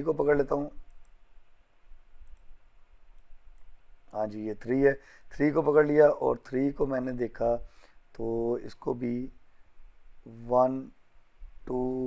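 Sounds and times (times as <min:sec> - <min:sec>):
low steady hum: 0:00.0 - 0:12.0
computer mouse clicks: 0:00.8 - 0:01.2, 0:02.2 - 0:03.8.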